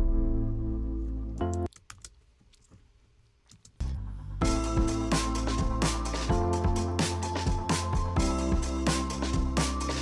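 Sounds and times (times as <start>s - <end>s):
keyboard chords over deep bass: 0.0s - 1.7s, 3.8s - 10.0s
computer keyboard clicks: 1.4s - 2.6s.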